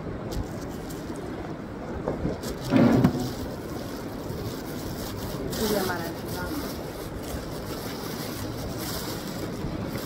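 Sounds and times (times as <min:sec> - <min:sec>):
plastic bag crinkling: 0:02.3 - 0:10.0.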